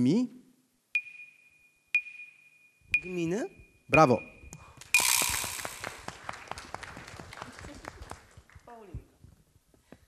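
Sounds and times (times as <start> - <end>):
audience applauding: 5.2 - 8.7.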